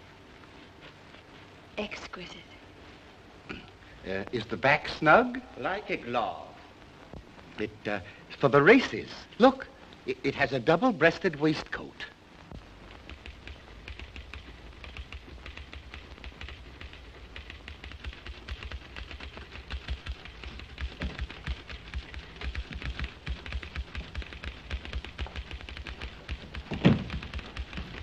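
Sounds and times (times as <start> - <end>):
rapid irregular clicking and tapping: 0.0 - 28.0.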